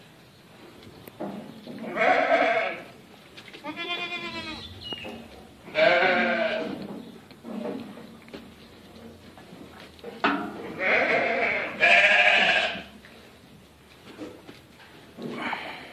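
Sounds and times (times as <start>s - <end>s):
goats bleating: 1.9s - 2.9s, 3.6s - 4.7s, 5.6s - 6.8s, 10.7s - 13.0s.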